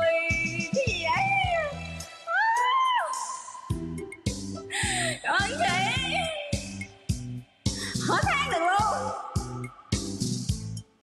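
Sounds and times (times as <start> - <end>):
backing track: 3.7 - 11.0.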